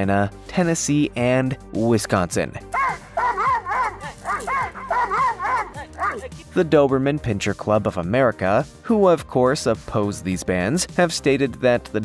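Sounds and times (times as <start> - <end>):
dog barking rapidly: 2.7 - 6.4.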